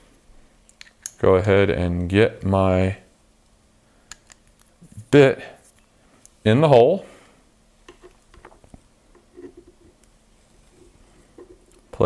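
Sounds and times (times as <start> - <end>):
small metal clicks and handling: 4.1 - 4.7.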